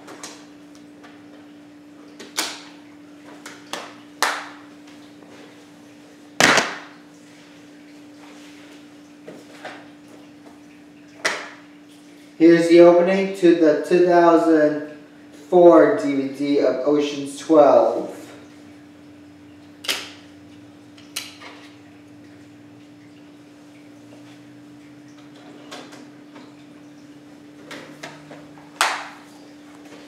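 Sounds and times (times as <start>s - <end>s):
steady hum: 0.0s - 30.0s.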